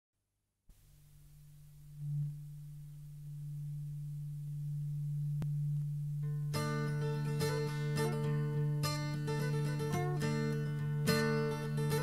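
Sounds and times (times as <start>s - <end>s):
low steady drone tone: 0.7s - 12.0s.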